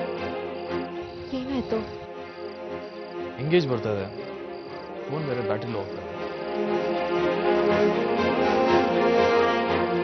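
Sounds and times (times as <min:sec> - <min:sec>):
crickets chirping: 0:00.0 - 0:10.0
soft background score: 0:00.0 - 0:10.0.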